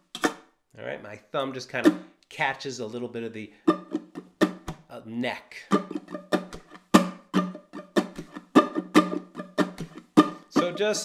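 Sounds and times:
ukulele strumming: 1.7s - 2.1s, 3.6s - 4.8s, 5.6s - 11.0s.

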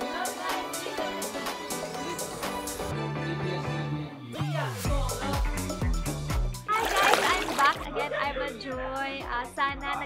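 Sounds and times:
upbeat music with kick drum: 4.8s - 10.0s
water splash: 6.7s - 7.9s.

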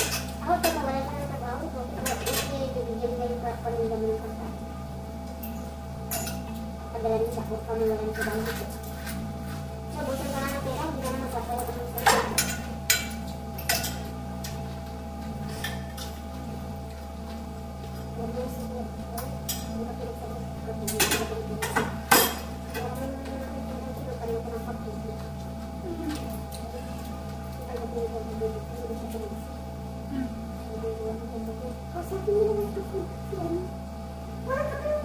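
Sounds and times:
soft background music: 0.0s - 35.0s.

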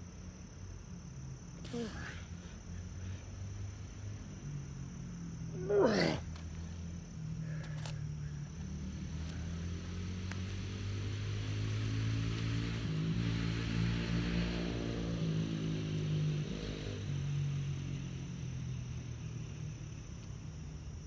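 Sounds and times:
crickets chirping: 0.0s - 21.0s
distant engine passing by: 6.6s - 20.1s.

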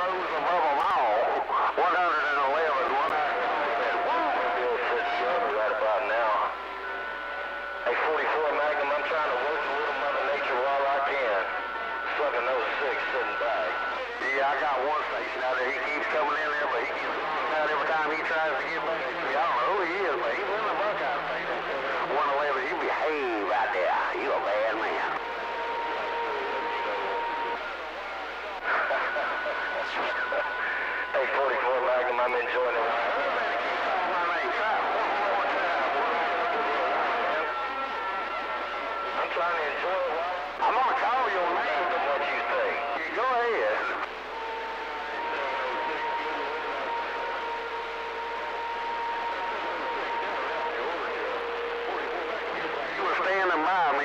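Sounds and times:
garbled radio voices: 0.0s - 54.0s.

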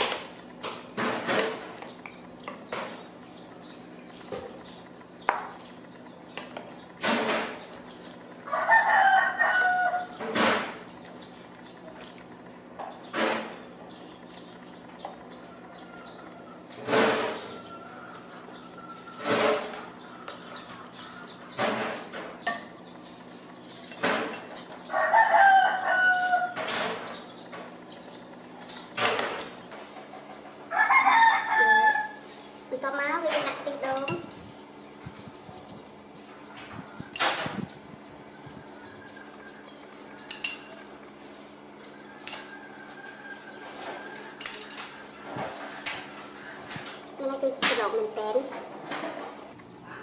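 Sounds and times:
rooster crowing: 8.4s - 10.2s, 15.5s - 19.4s, 24.9s - 26.6s, 30.7s - 32.2s, 42.0s - 44.4s.

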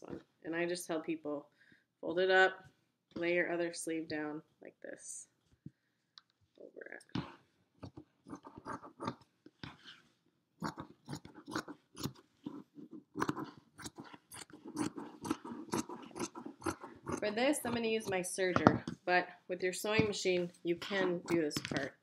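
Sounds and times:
scissors snipping fabric: 10.7s - 18.2s.

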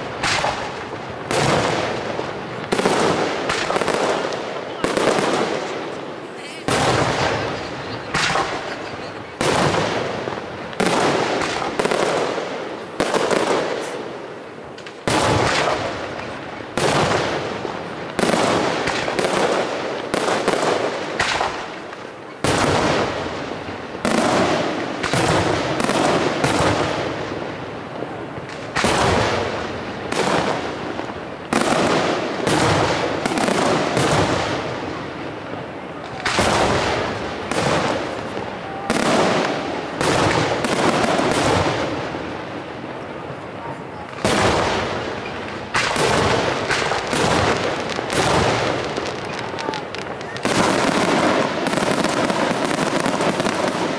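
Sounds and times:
firework shells bursting: 0.0s - 14.0s, 44.1s - 53.9s
rolling echo of bangs: 44.2s - 49.2s.

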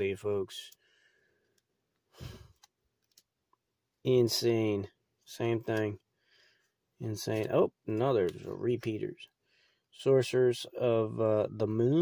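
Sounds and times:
person sighing: 2.1s - 2.6s.

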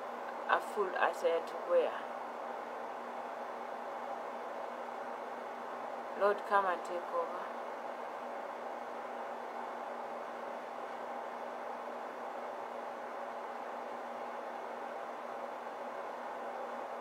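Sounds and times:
faint low hum: 0.0s - 17.0s
room noise hiss: 0.0s - 17.0s.

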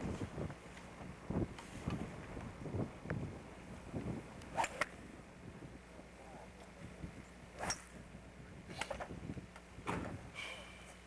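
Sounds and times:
wind buffeting microphone: 0.0s - 5.9s, 8.0s - 10.4s.

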